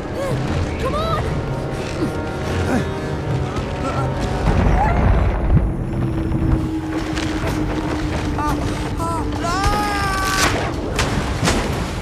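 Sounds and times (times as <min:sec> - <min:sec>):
deep rumble: 0:00.0 - 0:12.0
film soundtrack music: 0:00.0 - 0:12.0.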